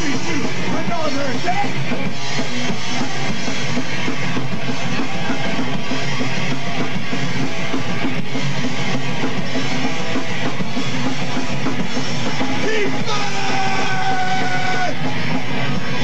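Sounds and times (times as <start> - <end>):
live punk rock band: 0.0 - 16.0.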